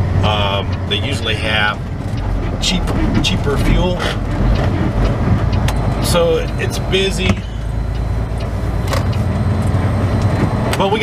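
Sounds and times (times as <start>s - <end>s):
diesel engine low rumble: 0.0s - 11.0s.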